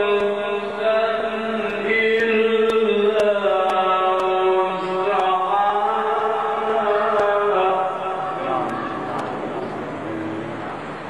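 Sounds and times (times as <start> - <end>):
man chanting melodic recitation: 0.0 - 10.7.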